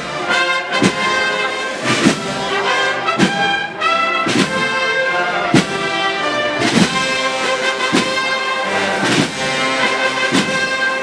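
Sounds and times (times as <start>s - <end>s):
brass band playing march: 0.0s - 11.0s
drum strikes: 0.7s - 11.0s.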